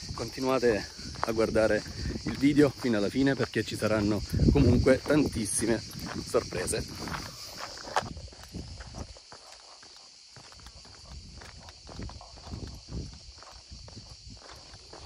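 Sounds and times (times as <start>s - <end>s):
footsteps on dirt and gravel: 0.0s - 15.0s
insects chirping: 0.0s - 15.0s.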